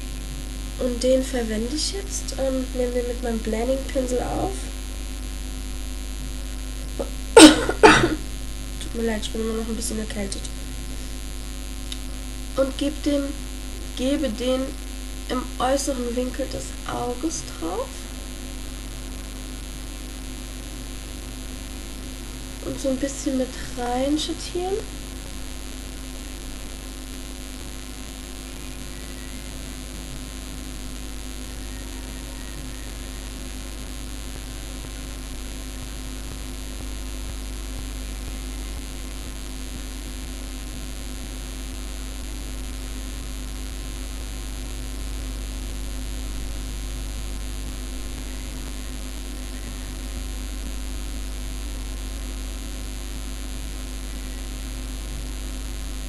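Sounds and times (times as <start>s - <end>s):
electrical hum: 0.0s - 56.0s
steady hiss: 0.0s - 56.0s.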